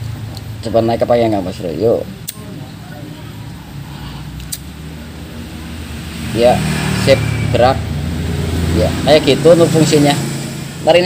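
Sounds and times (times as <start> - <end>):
engine rumbling: 0.0 - 11.0
sharp click: 2.2 - 2.4, 4.4 - 4.7.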